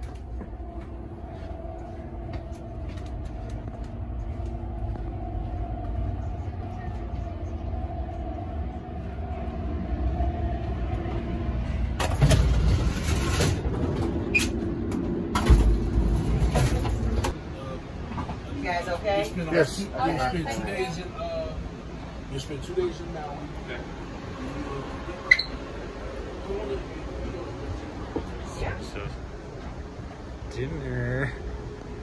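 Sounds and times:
rushing wheel and track noise: 0.0s - 32.0s
train rumble heard from inside: 0.0s - 32.0s.

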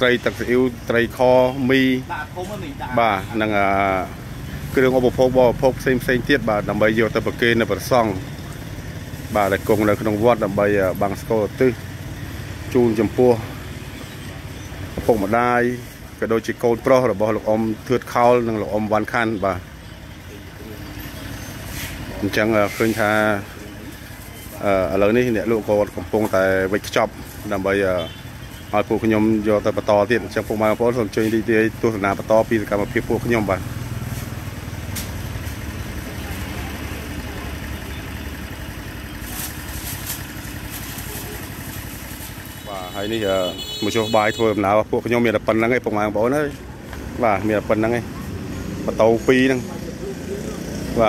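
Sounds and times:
speech: 0.0s - 8.3s, 9.3s - 11.8s, 12.7s - 13.6s, 15.0s - 19.6s, 22.0s - 33.7s, 36.0s - 38.0s, 42.6s - 51.0s
vehicle engine running: 0.0s - 51.0s.

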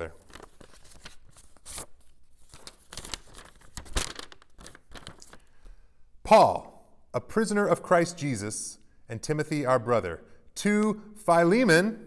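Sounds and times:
paper crinkling and rustling: 0.0s - 5.5s.

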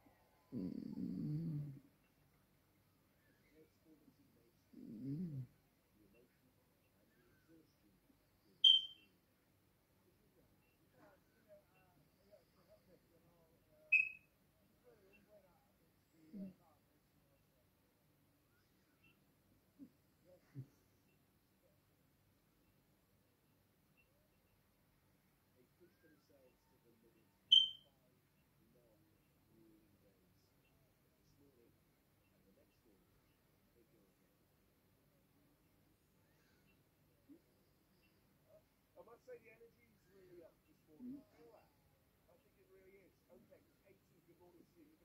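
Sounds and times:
short high-pitched beep: 8.6s - 9.0s, 14.0s - 14.2s, 27.5s - 27.8s
faint speech: 9.9s - 17.8s, 25.4s - 45.0s.

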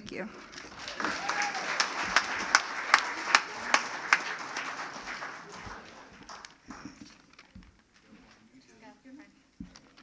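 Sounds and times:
applause: 0.4s - 7.2s.

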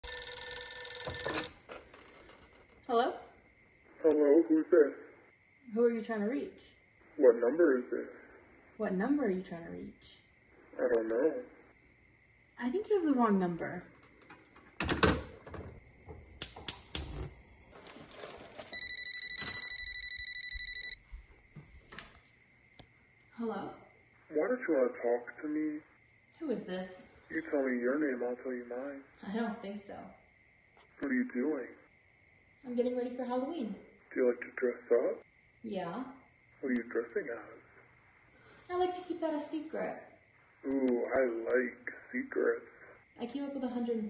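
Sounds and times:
telephone bell ringing: 0.0s - 1.5s, 18.7s - 21.0s
gas igniter clicking: 16.4s - 17.2s.

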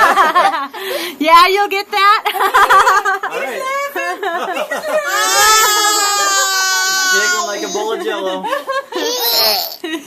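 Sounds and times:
people laughing: 0.0s - 0.8s, 2.3s - 10.0s.

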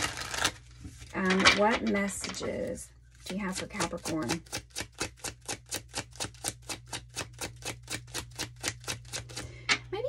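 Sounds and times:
cards being shuffled: 0.0s - 9.5s.

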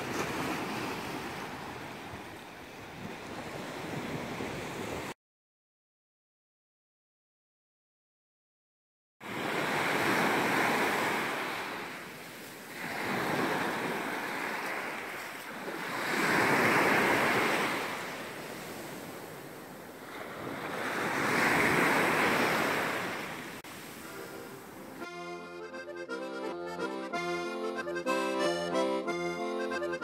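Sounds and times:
small waves breaking on shore: 0.0s - 5.2s, 9.2s - 25.0s.

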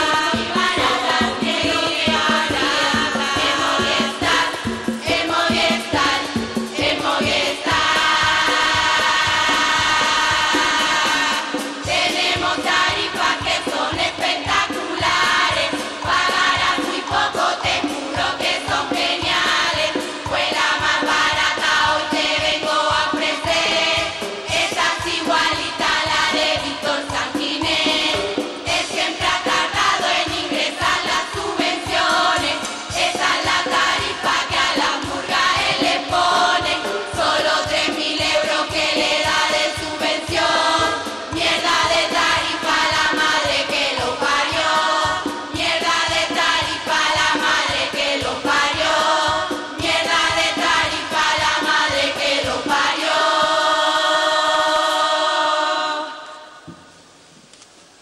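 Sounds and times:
chorus singing to a beat: 0.0s - 57.0s.

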